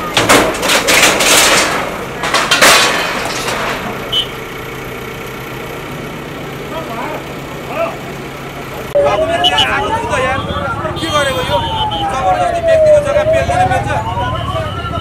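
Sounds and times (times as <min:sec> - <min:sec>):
diesel engine running: 0:00.0 - 0:15.0
crowd voices: 0:06.6 - 0:15.0
siren wailing: 0:09.0 - 0:15.0.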